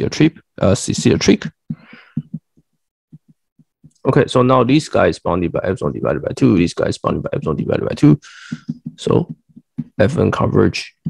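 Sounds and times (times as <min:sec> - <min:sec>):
stylus tapping tablet screen: 0:00.8 - 0:04.1, 0:07.0 - 0:10.4
short breath: 0:08.2 - 0:08.8.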